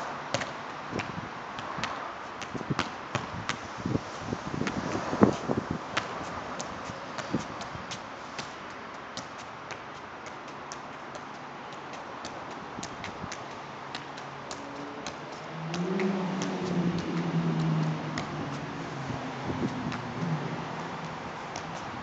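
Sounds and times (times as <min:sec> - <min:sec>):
soccer ball thudding on foot: 0:00.3 - 0:04.0, 0:04.6 - 0:18.8, 0:19.4 - 0:22.0.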